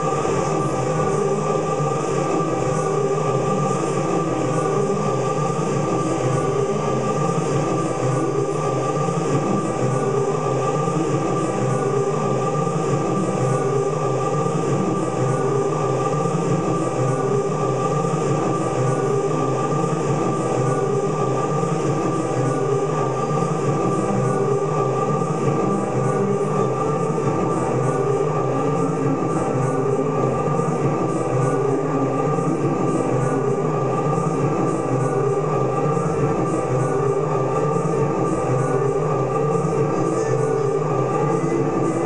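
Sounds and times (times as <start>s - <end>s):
drone of layered looped voices: 0.0s - 42.0s.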